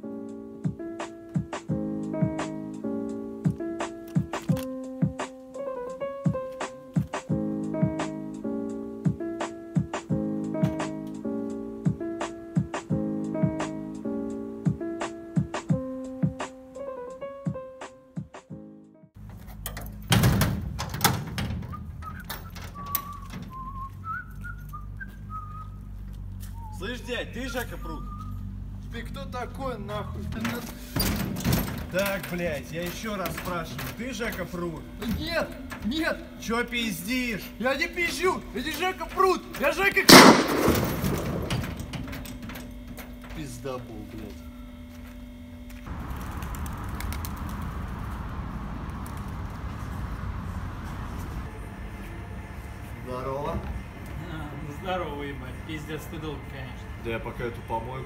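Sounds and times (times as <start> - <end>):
keys clicking at a padlock: 4.0 - 4.8
low street rumble: 19.2 - 58.0
person whistling a tune: 21.7 - 26.8, 27.5 - 28.5.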